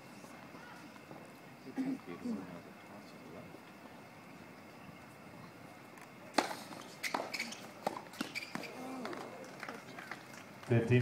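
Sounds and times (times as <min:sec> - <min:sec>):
man's voice close to microphone: 0:10.7 - 0:11.0.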